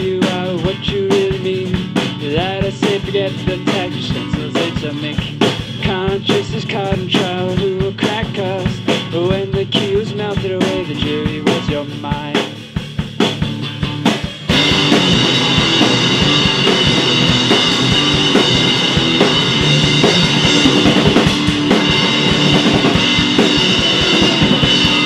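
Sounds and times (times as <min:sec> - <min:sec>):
indie rock band playing: 0:00.0 - 0:25.0.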